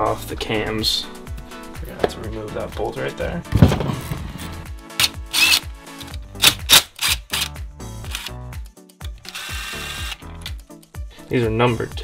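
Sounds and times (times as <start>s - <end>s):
background music with bass: 0.0s - 12.0s
cordless drill whining: 5.0s - 5.7s, 9.2s - 10.4s.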